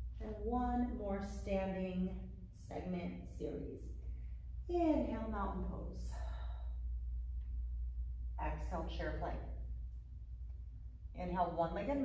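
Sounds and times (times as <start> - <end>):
steady low hum: 0.0 - 12.0
woman breathing: 6.0 - 7.2.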